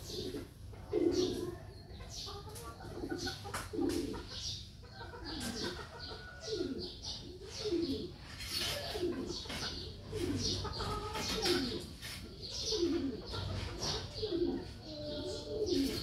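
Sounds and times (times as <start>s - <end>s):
birds low calls: 0.0s - 16.0s.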